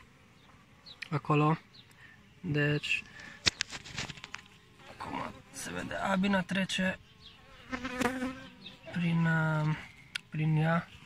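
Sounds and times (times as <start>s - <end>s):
honeybees buzzing: 0.0s - 11.0s.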